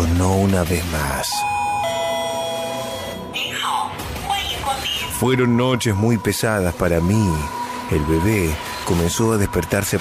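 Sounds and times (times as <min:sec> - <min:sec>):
background music: 0:00.0 - 0:10.0
electronic two-tone chime: 0:01.3 - 0:03.4.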